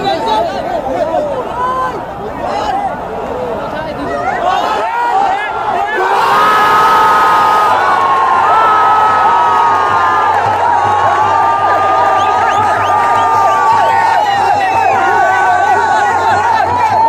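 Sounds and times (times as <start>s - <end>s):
stadium crowd cheering and shouting: 0.0s - 17.0s.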